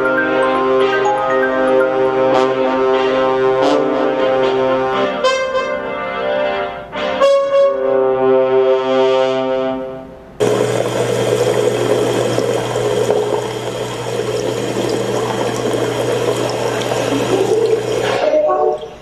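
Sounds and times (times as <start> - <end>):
held brass chord: 0.1 - 10.2
tap water running into sink: 10.4 - 19.0.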